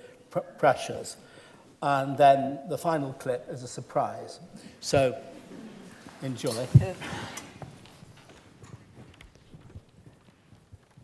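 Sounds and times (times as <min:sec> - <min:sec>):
faint footsteps on a stage: 0:04.9 - 0:11.0.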